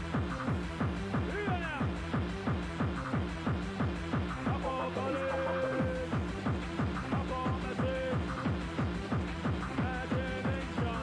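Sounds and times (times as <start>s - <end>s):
rave dance music: 0.0s - 11.0s.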